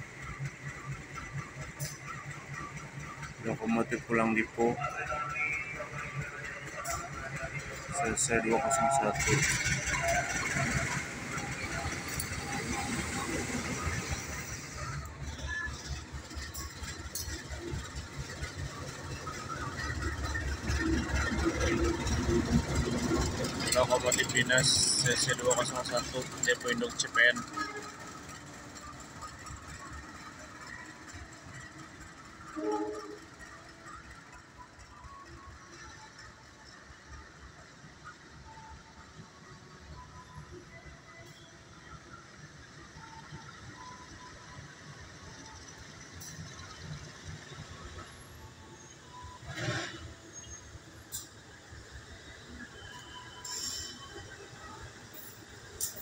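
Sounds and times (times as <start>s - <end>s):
locomotive engine passing: 0.0s - 56.0s.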